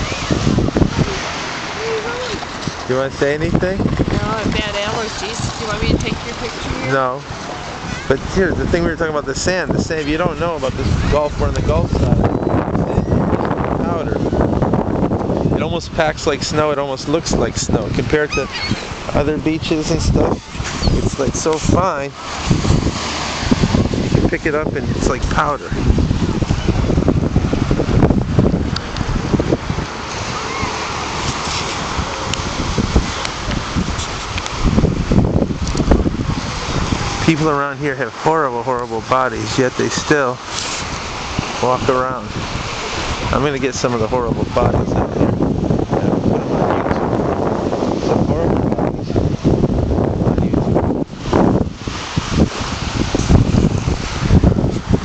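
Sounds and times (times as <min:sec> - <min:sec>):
small waves breaking: 0:00.0 - 0:08.4, 0:17.9 - 0:46.0, 0:51.1 - 0:55.0
faint voices: 0:00.0 - 0:14.2
wind buffeting microphone: 0:00.0 - 0:55.0.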